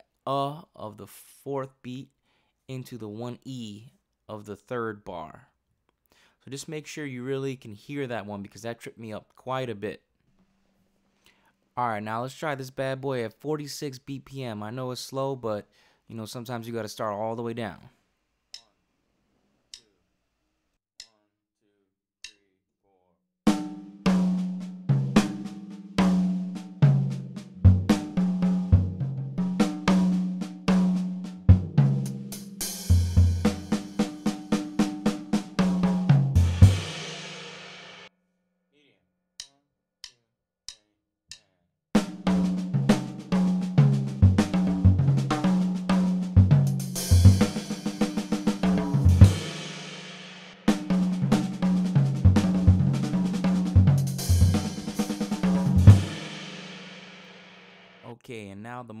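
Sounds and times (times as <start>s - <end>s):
drum kit playing a fill: 23.5s - 38.1s, 42.0s - 58.1s.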